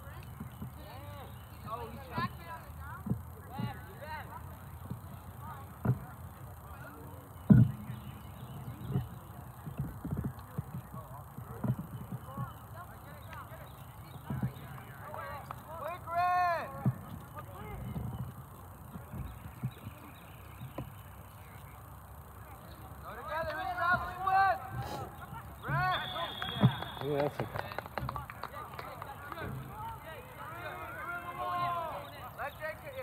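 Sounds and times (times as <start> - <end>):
scattered thumps: 4.8 - 6.6, 7.4 - 12.6.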